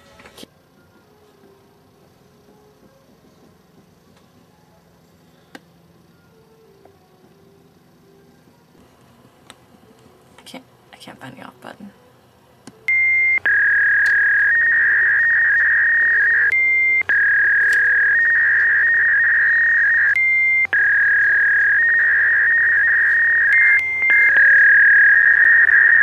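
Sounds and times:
fax modem high tone: 12.9 - 26.0.

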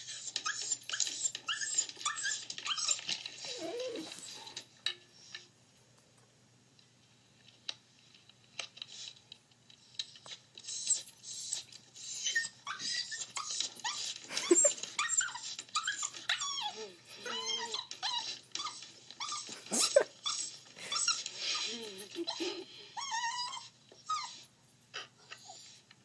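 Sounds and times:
puppy whining and yelping: 0.0 - 4.7, 10.1 - 26.0.

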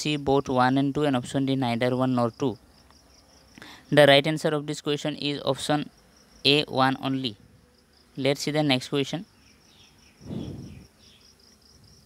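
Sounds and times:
insect chirping trill: 0.0 - 12.0.

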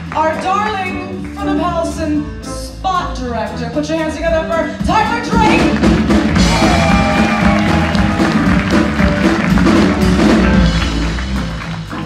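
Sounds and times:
live band playing: 0.0 - 12.0
piano: 0.0 - 12.0
low bass line: 4.2 - 12.0.

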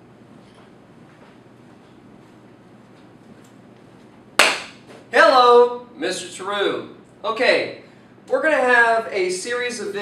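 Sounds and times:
sharp smack: 4.4 - 4.8.

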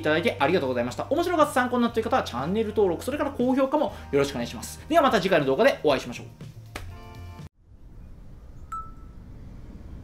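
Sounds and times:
short bright chime: 8.7 - 9.2.

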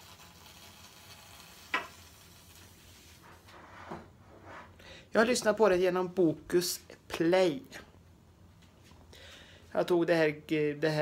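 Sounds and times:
food sizzling on stove: 0.0 - 3.3.

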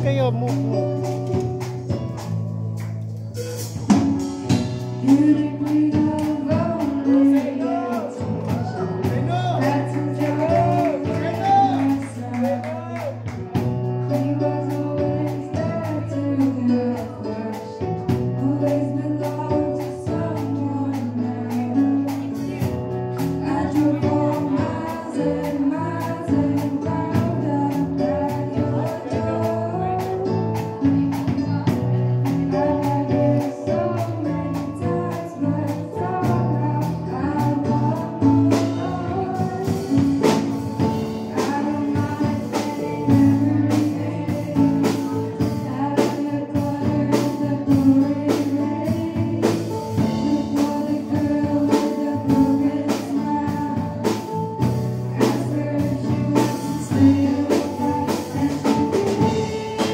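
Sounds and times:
drum kit: 0.0 - 59.9
electric bass: 0.0 - 59.9
woman singing pop song: 4.8 - 59.9.

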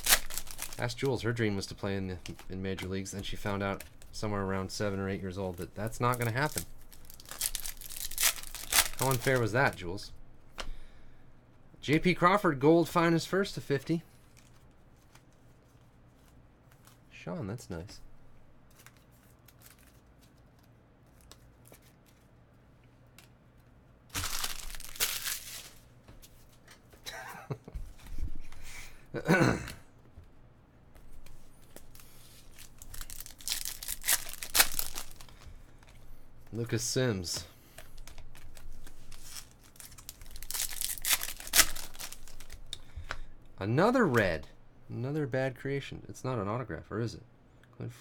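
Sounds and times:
foil wrapper tearing and crackling: 0.0 - 1.4, 5.2 - 9.7, 24.1 - 25.8, 31.9 - 35.4, 38.0 - 42.6.

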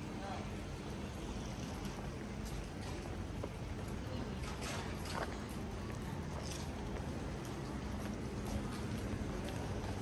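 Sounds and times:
street ambience hum: 0.0 - 10.0
footsteps on pavement: 1.9 - 4.0, 5.0 - 10.0.

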